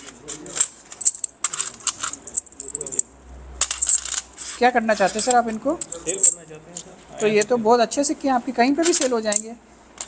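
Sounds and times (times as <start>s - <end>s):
metal coins clinking: 0.0s - 6.6s.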